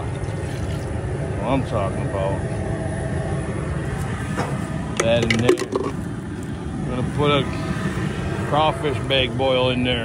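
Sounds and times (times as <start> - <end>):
gas burners rumbling: 0.0 - 10.0.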